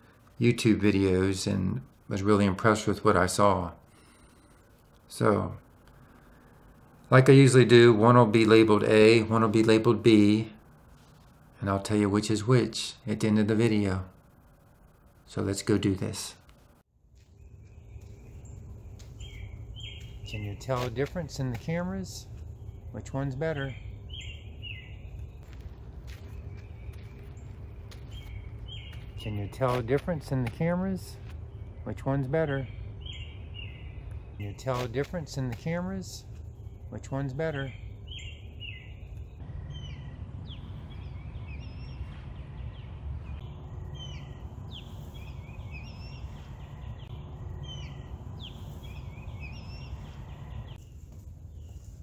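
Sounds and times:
low outdoor rumble: 0.0s - 52.0s
songbird calls: 17.3s - 52.0s.

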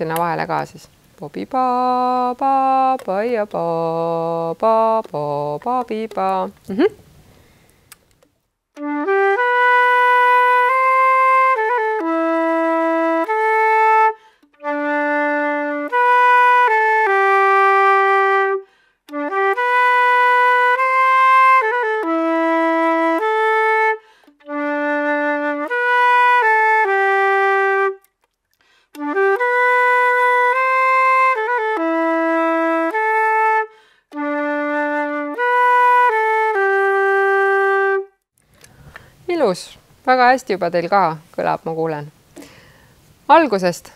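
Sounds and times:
flute playing slow waltz: 8.8s - 28.1s, 29.0s - 38.2s.

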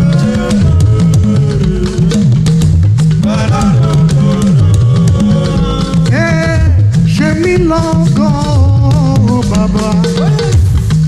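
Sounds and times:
person singing lead vocals: 0.0s - 10.8s
bass line: 0.0s - 11.0s
drums: 0.0s - 11.0s.

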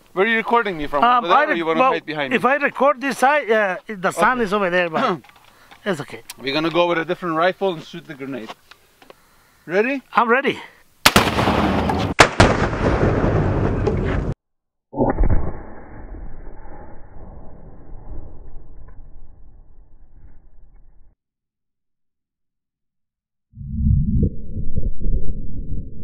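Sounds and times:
rifle shot crack: 11.0s - 13.9s
distant grenade explosion: 11.0s - 14.4s.

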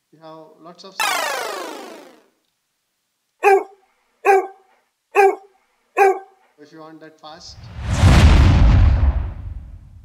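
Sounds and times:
dog barking: 3.4s - 6.4s.

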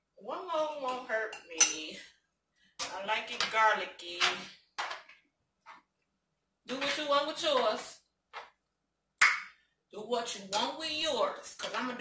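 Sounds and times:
metal spoon clinking on jar and pan: 0.9s - 1.9s.

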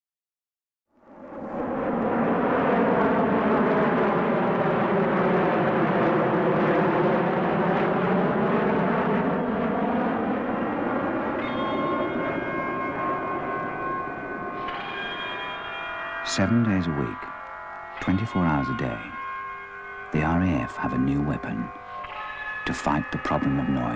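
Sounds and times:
jet flying low overhead: 0.9s - 23.9s
held musical tones: 10.6s - 23.9s.

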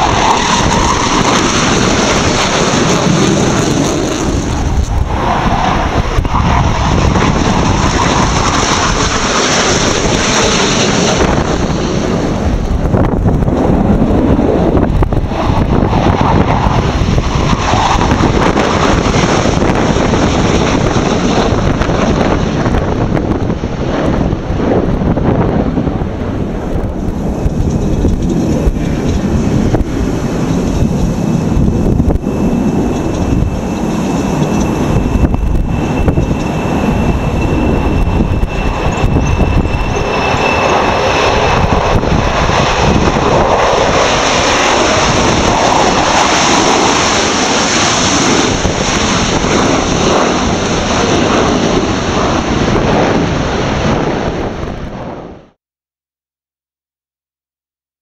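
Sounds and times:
thin high engine whine: 0.0s - 25.5s, 26.1s - 55.3s
jet engines roaring: 0.0s - 55.6s.

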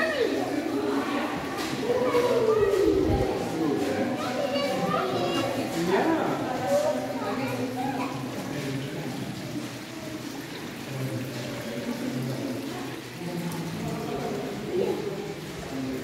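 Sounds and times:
people talking indistinctly: 0.0s - 16.0s
water trickling and dripping: 0.0s - 16.0s.

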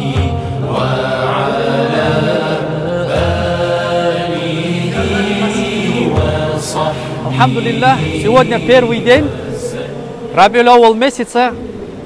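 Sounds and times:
men chanting in unison: 0.0s - 11.8s
low held drone note: 4.4s - 12.0s.

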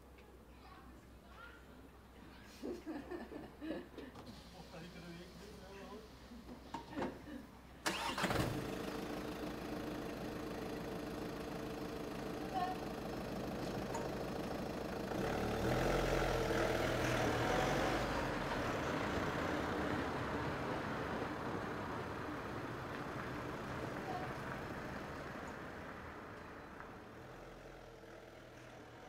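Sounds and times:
car engine starting and idling: 7.8s - 29.0s
car pulling away: 7.8s - 29.0s.

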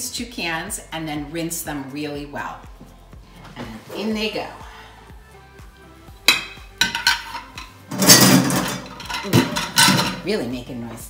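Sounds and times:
kitchenware clinks: 6.3s - 10.3s
kitchenware clattering: 6.3s - 10.5s.

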